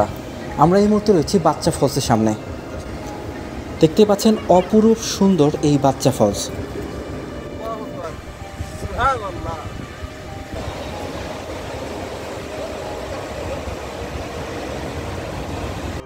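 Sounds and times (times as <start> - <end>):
river rushing over boulders: 10.2 - 16.0.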